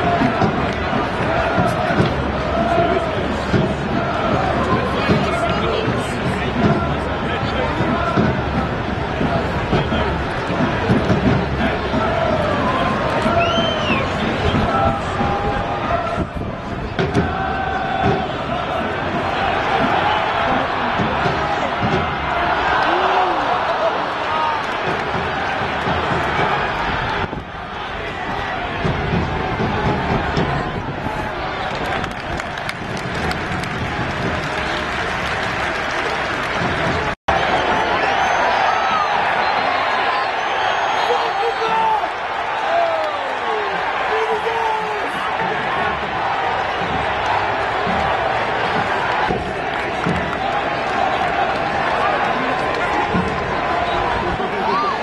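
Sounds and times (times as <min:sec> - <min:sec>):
stadium crowd hubbub: 0:00.0 - 0:55.0.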